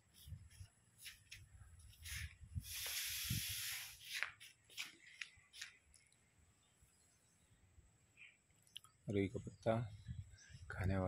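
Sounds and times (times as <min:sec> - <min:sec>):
steady hiss: 0:00.0 - 0:05.0
leaves rustling: 0:00.0 - 0:05.8.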